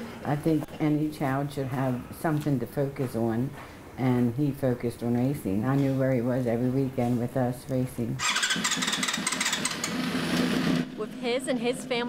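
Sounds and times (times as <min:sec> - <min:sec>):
small engine rattling buzz: 0:08.2 - 0:11.1.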